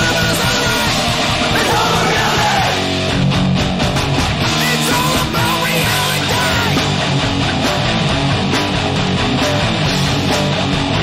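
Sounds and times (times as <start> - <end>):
shouted vocal: 0.0 - 3.0, 4.6 - 6.9
loud guitar-driven punk music: 0.0 - 11.0.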